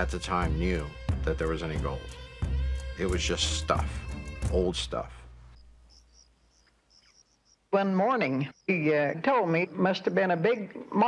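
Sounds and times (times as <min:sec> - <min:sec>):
background music: 0:00.0 - 0:05.5
crickets chirping: 0:00.3 - 0:11.0.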